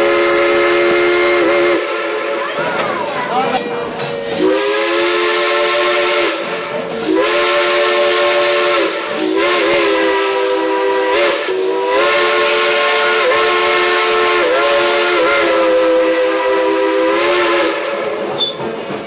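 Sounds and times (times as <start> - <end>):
steam hiss: 0.0 - 2.6, 4.0 - 19.0
steam locomotive whistle blasts: 0.0 - 2.7, 4.3 - 18.6.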